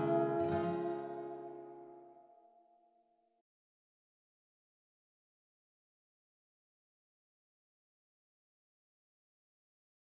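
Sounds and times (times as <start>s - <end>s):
guitar chord ringing out: 0.0s - 2.8s.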